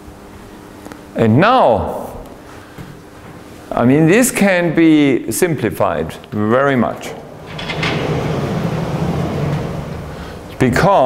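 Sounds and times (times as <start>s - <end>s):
chalkboard panels sliding: 7.1s - 10.6s.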